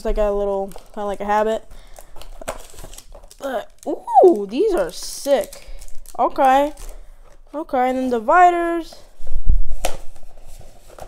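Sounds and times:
cardboard scraping and rustling: 9.1s - 11.0s.

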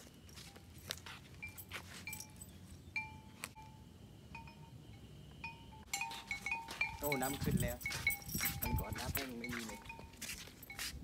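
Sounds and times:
wind chimes ringing: 0.3s - 11.0s.

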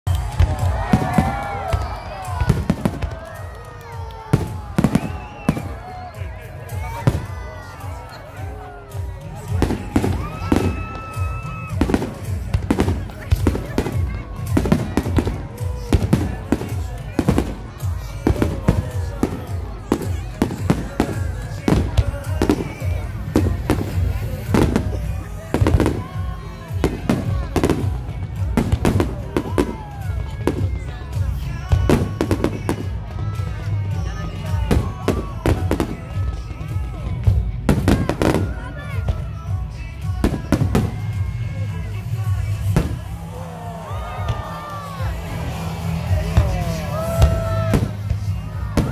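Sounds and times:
fireworks bangs: 0.1s - 48.9s.

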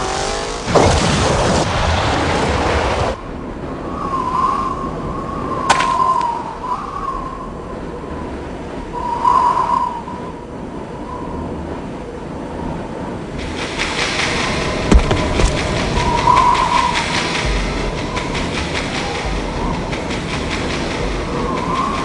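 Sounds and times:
thin wavering whistle: 3.8s - 7.8s, 8.9s - 11.7s, 13.4s - 22.0s
tyre spinning in gravel: 14.7s - 16.1s.

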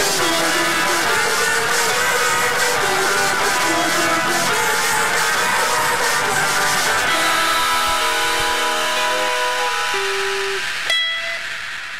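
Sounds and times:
distorted electric guitar ringing: 0.0s - 11.9s.

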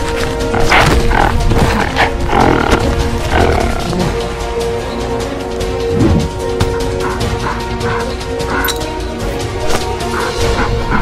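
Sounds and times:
film music: 0.0s - 11.0s
animal roars and growls: 0.1s - 4.3s.

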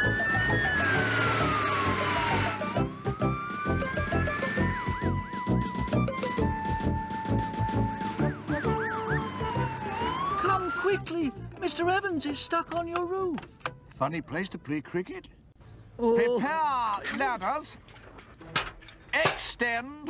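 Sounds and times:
fire engine siren wailing: 0.0s - 11.3s
background music with steady beat: 2.3s - 13.9s.

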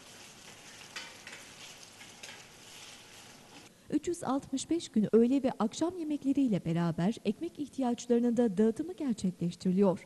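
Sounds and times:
metal utensil clinking on pan: 0.5s - 2.6s.

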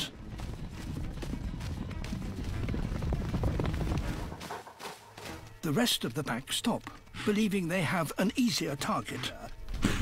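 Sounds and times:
background music: 0.0s - 10.0s
hooves drumming on dry ground: 0.0s - 10.0s.

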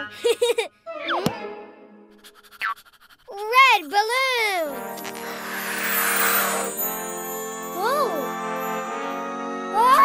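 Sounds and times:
short rising chirp: 5.0s - 7.1s.

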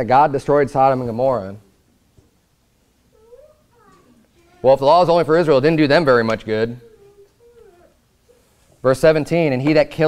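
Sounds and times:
baby whimpering: 6.8s - 8.6s.

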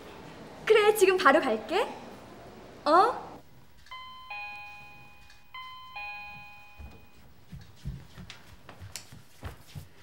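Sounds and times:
electronic two-note doorbell chime: 3.9s - 7.3s.

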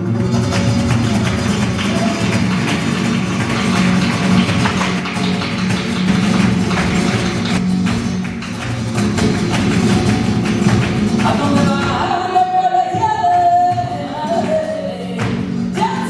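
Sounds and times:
flamenco guitars: 0.0s - 16.0s.

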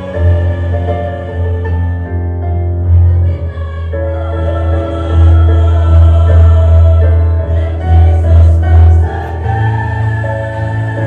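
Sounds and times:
choir singing: 0.0s - 11.0s.

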